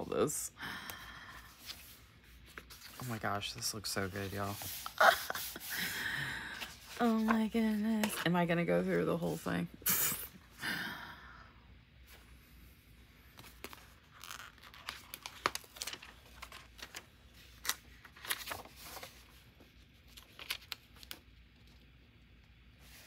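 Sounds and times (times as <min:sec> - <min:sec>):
person laughing: 0:04.9 - 0:06.2
sticker sheet crinkling: 0:13.4 - 0:19.2.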